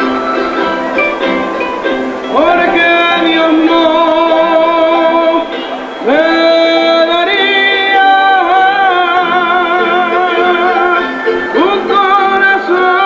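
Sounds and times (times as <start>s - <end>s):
instrumental accompaniment: 0.0s - 13.0s
voice singing with vibrato: 0.0s - 13.0s.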